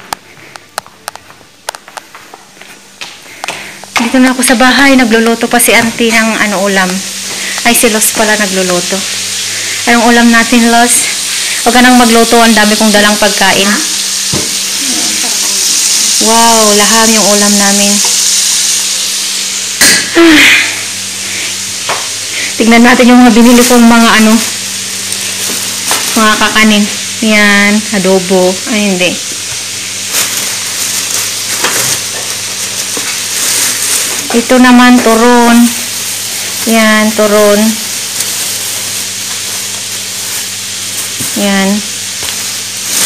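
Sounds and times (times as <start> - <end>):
oil sizzling in a frying pan: 2.9 - 43.0.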